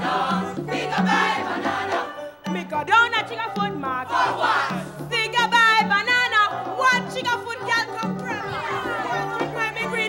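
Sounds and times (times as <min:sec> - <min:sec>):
group singing a folk song: 0:00.0 - 0:10.0.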